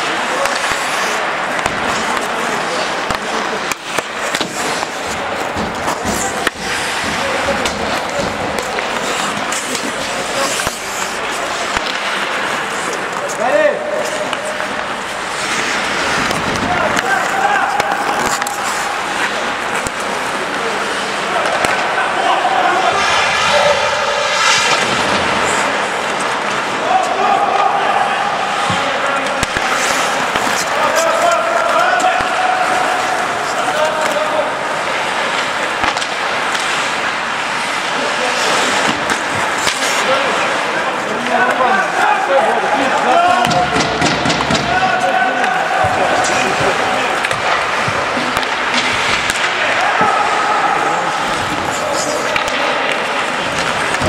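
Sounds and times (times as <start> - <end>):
hockey sticks and puck clacking: 0.0 - 54.0.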